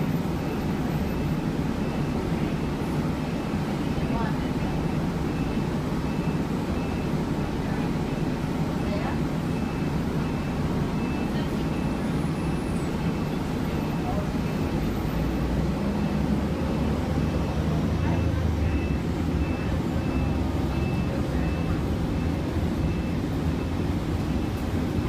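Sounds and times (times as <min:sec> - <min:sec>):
bus engine and road rumble: 0:00.0 - 0:25.0
faint high beep: 0:16.0 - 0:25.0.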